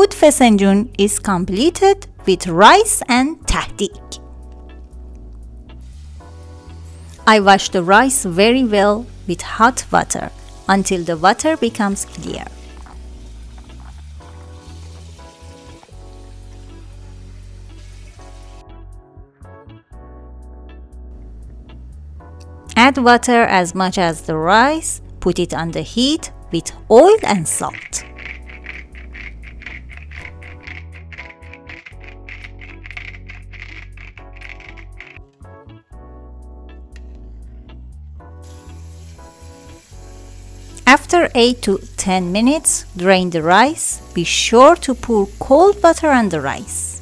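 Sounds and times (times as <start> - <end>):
background music: 0.0 - 47.0
watery hiss from pot: 5.7 - 18.6, 38.4 - 47.0.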